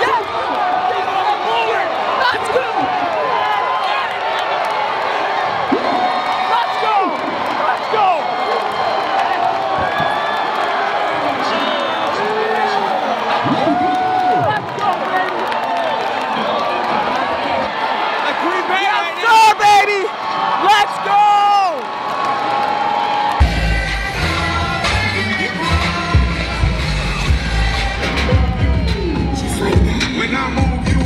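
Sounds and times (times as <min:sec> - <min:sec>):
crowd cheering and yelling: 0:00.0 - 0:31.0
bass-heavy music with steady beat: 0:23.4 - 0:31.0.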